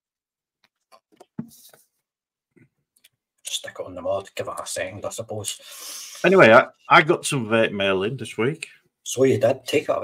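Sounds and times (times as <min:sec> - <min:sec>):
breathy hiss of vape draw: 0:05.6 - 0:06.3.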